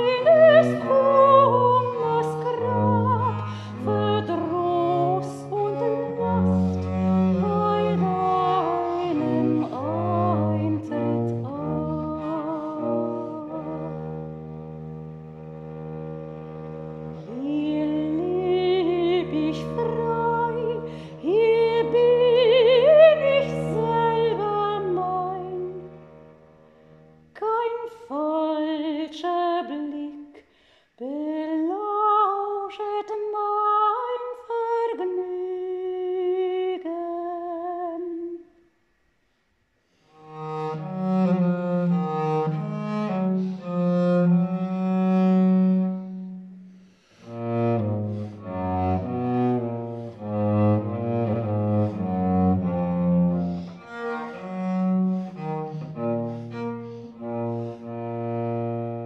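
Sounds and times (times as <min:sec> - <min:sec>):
viola da gamba low bowed notes: 0:00.0 - 0:27.2, 0:40.2 - 0:59.0.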